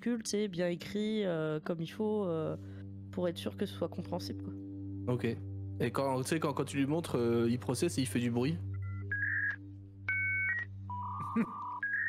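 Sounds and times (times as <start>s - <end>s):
short electronic beeps: 8.7s - 12.0s.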